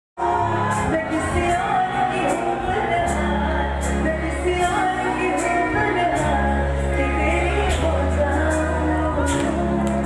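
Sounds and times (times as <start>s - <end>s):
amplified band music: 0.2s - 10.0s
person singing into microphone: 0.2s - 10.0s.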